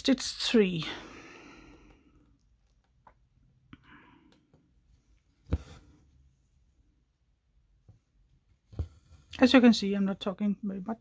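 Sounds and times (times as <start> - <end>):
soft breath: 0.9 - 2.4, 3.7 - 4.7.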